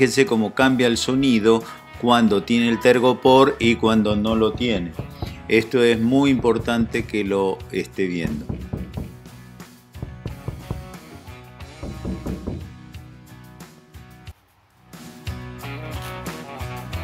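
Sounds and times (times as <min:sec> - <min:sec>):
hand knocking on sheet metal wall: 0:04.1 - 0:07.3, 0:08.2 - 0:09.3, 0:10.0 - 0:12.8.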